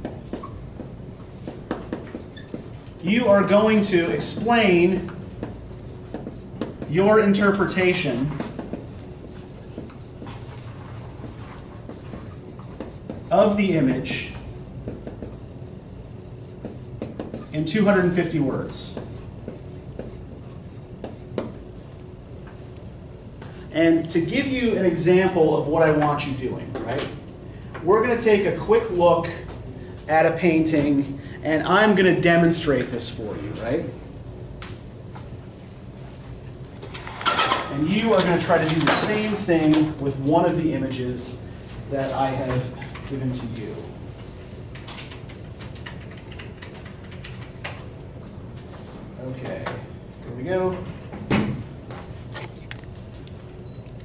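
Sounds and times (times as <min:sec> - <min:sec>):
marker writing on whiteboard: 0:00.0 - 0:22.7, 0:37.3 - 0:41.0
low room hum: 0:00.0 - 0:54.0
computer keyboard typing: 0:44.7 - 0:47.8.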